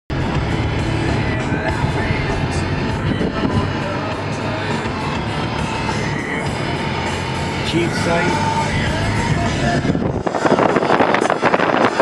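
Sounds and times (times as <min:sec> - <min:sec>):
music playing: 0:00.1 - 0:12.0
road and engine noise in car: 0:00.1 - 0:12.0.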